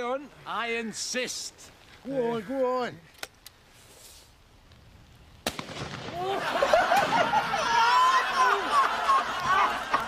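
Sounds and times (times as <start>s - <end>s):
shotgun shot: 5.4s - 6.2s.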